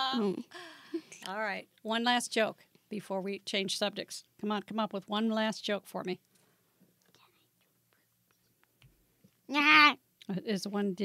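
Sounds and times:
faint whispering: 0:07.1 - 0:08.4.

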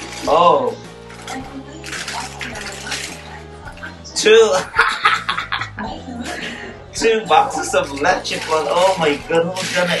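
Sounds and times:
plastic bag rustling: 0:00.0 - 0:03.5, 0:07.7 - 0:10.0.

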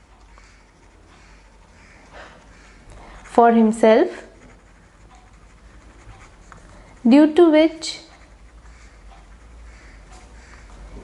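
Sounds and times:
marker pen scratching on paper: 0:00.0 - 0:11.0.

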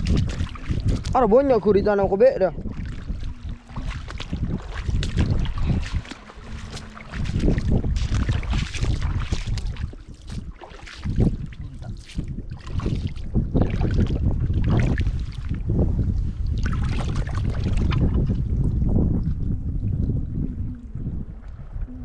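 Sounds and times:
shallow water splashing: 0:00.0 - 0:22.0
wind buffeting microphone: 0:00.0 - 0:22.0.

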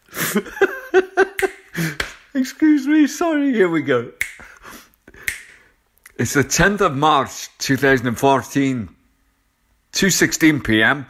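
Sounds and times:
person reading aloud: 0:02.3 - 0:04.2, 0:06.1 - 0:09.0, 0:09.9 - 0:11.0
mouth clicks: 0:04.2 - 0:06.2.

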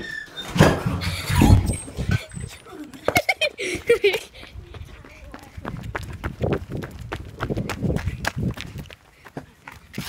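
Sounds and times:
footsteps on concrete: 0:02.8 - 0:10.0.

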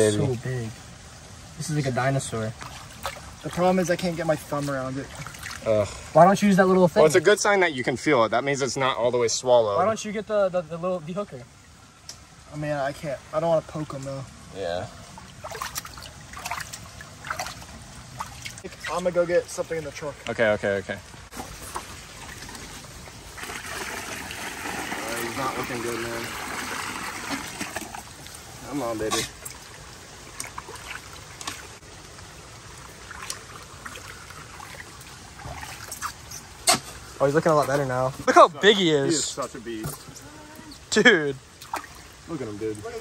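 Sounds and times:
water trickling in a pool: 0:00.0 - 0:43.0
short water splashes: 0:02.0 - 0:06.2, 0:15.0 - 0:38.4, 0:41.4 - 0:43.0.

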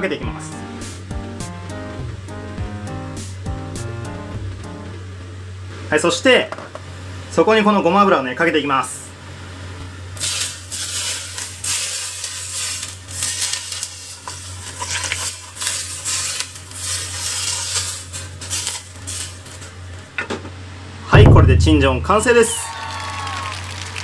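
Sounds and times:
steady low hum: 0:00.0 - 0:07.4, 0:19.9 - 0:22.5
hot oil sizzling and crackling: 0:10.1 - 0:20.2.

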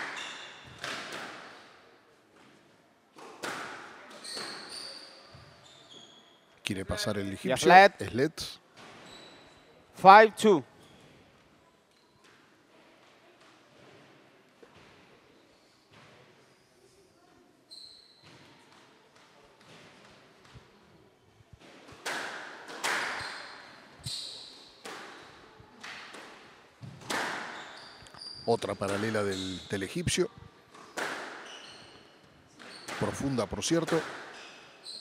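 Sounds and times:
squash ball hitting racquets and walls: 0:00.0 - 0:01.8, 0:03.2 - 0:04.9, 0:21.6 - 0:27.8, 0:28.8 - 0:29.4, 0:30.7 - 0:32.0, 0:32.6 - 0:34.6.

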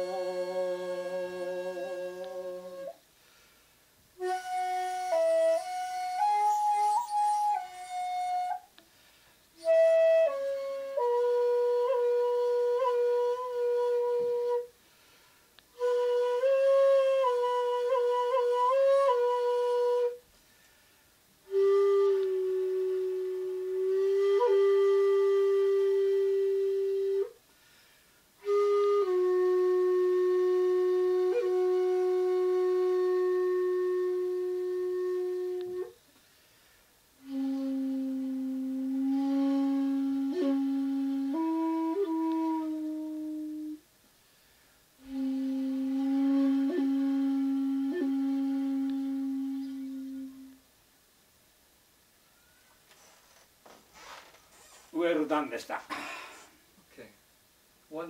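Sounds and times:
bamboo flute playing solo: 0:00.0 - 0:03.0, 0:04.2 - 0:08.8, 0:09.6 - 0:14.8, 0:15.7 - 0:20.2, 0:21.4 - 0:27.4, 0:28.4 - 0:36.0, 0:37.2 - 0:43.9, 0:45.0 - 0:50.7.

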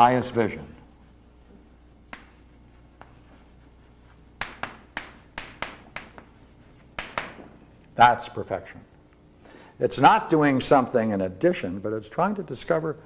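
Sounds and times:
chalk tapping and scraping: 0:00.0 - 0:07.4.

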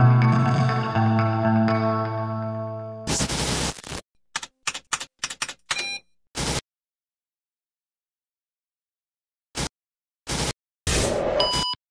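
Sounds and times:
glitchy noise bursts: 0:03.1 - 0:04.0, 0:06.4 - 0:06.6, 0:10.3 - 0:10.6.

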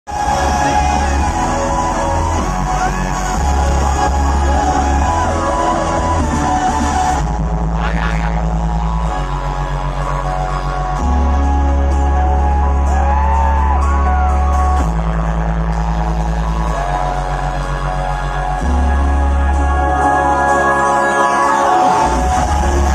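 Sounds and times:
crowd cheering and whooping: 0:00.1 - 0:22.9
electronic dance music: 0:00.1 - 0:22.9.

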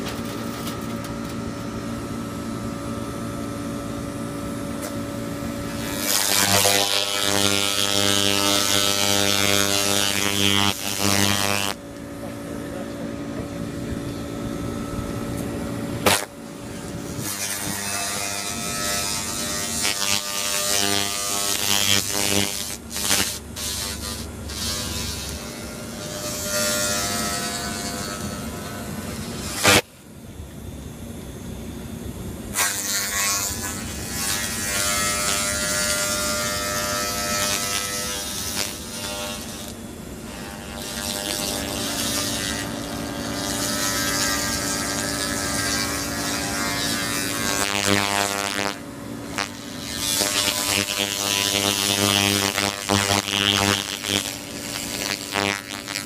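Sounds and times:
laser cleaning gun buzzing: 0:00.4 - 0:29.9, 0:32.5 - 0:56.0.

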